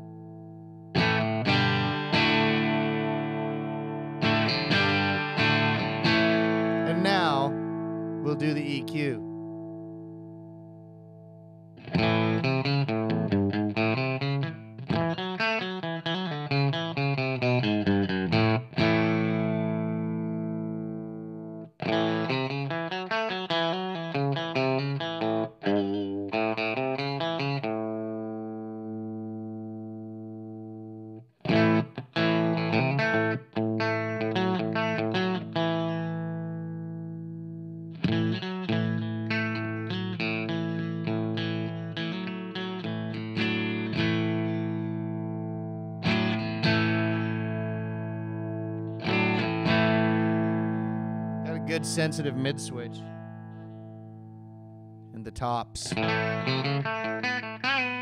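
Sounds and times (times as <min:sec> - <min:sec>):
electric guitar chords: 0:00.0 - 0:58.0.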